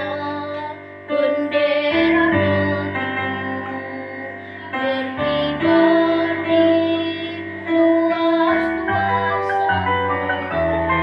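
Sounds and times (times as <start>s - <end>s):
girl singing slow song: 0.0s - 11.0s
piano chords: 0.0s - 11.0s.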